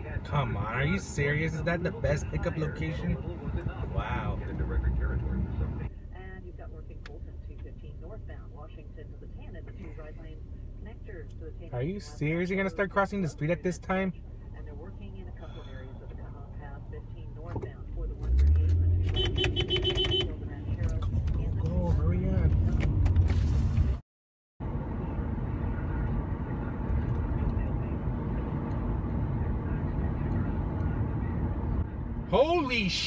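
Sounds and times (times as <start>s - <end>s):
car engine and road noise: 0.0s - 24.0s, 24.6s - 33.0s.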